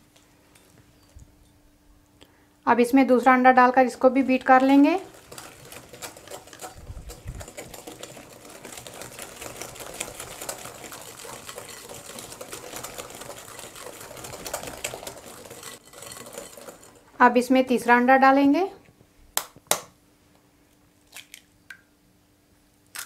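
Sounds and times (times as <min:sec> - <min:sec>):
whisk wires clattering against glass: 0:04.5 - 0:17.2.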